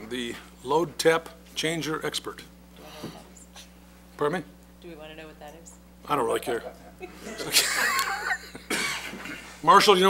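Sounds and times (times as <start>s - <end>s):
low room hum: 0.0s - 10.0s
breathy cough-like vocal bursts: 8.7s - 9.2s.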